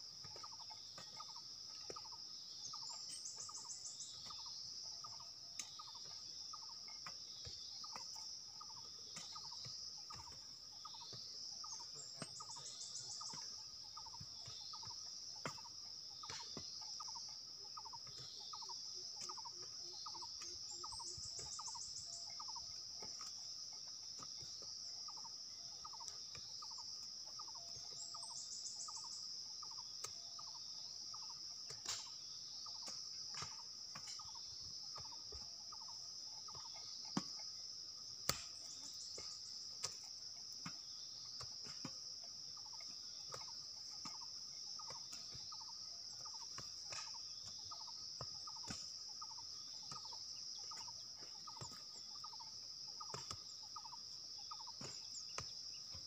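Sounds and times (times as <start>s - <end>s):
pulsed insect call: 0.0s - 56.0s.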